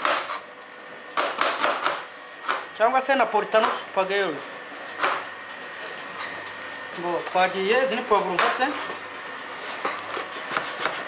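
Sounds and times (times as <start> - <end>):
knife slicing onion on cutting board: 0.0 - 0.5, 1.2 - 2.7, 10.0 - 11.0.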